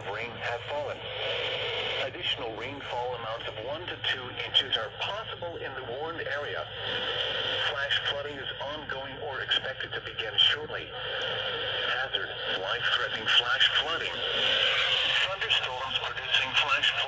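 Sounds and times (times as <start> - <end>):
voice speaking over radio: 0.0 - 17.0
steady hiss: 11.1 - 17.0.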